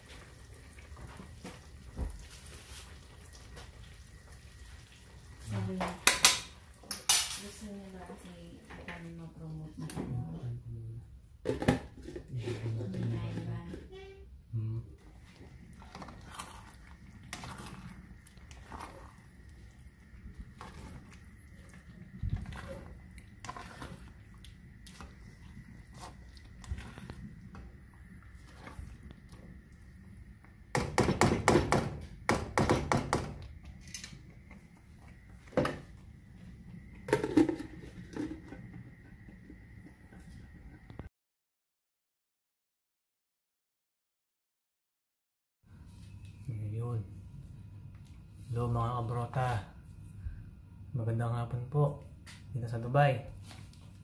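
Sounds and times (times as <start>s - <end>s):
spatula scraping a pan: 15.0s - 29.1s
metal spoon scraping wok: 20.5s - 24.2s.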